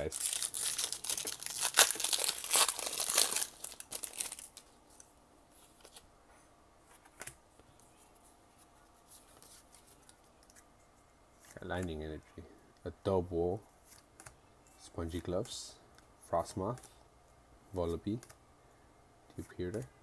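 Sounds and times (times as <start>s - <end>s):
foil wrapper tearing and crinkling: 0.0s - 4.6s.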